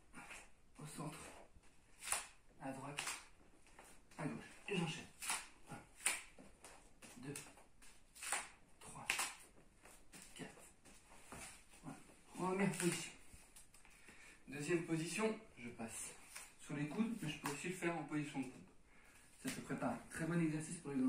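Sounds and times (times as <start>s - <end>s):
man breathing hard: 13.9s - 14.5s.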